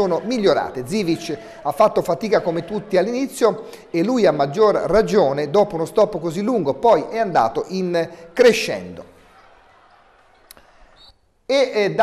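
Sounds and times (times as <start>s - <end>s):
faint sports hall sound: 8.0s - 12.0s.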